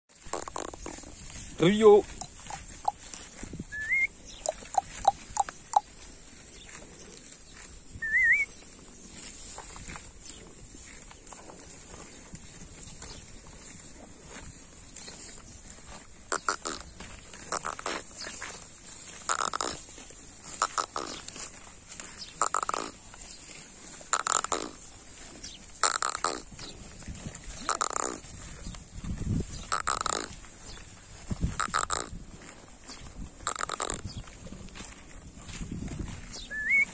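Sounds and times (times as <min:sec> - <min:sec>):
cattle sounds: 0:00.2 - 0:36.9.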